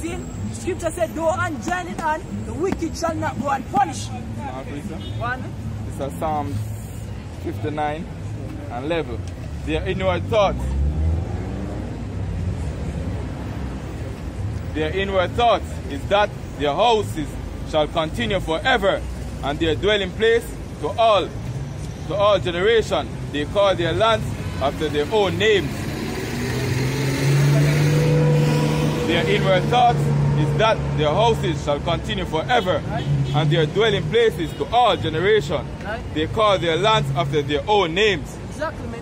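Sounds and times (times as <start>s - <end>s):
street noise rumble: 0.0s - 39.0s
vehicle engine humming: 0.0s - 39.0s.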